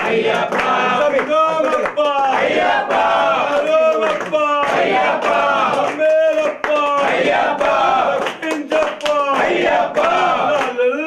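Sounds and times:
hand clapping: 0.0s - 11.0s
men chanting together: 0.0s - 11.0s.

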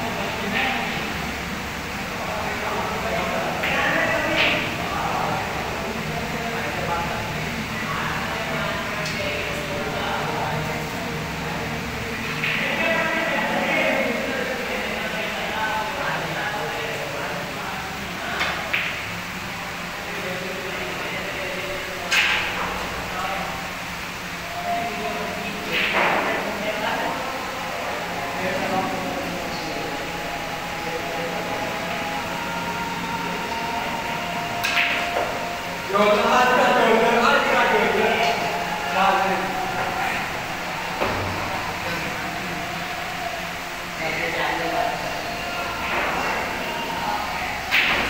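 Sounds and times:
indistinct men's voices: 0.0s - 48.0s
steady hum: 0.0s - 48.0s
cue striking ball click: 34.6s - 35.4s.

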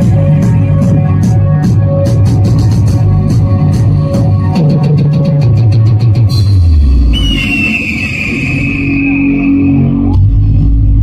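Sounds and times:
deep bass drone: 0.0s - 11.0s.

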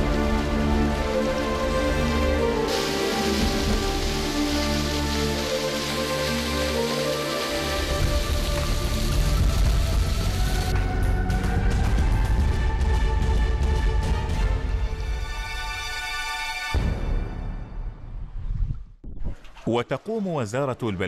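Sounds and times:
water splashing over rock: 1.9s - 10.8s.

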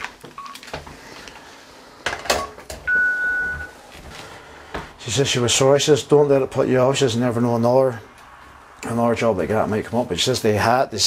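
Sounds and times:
telephone beep: 0.4s - 0.6s, 2.4s - 3.8s.

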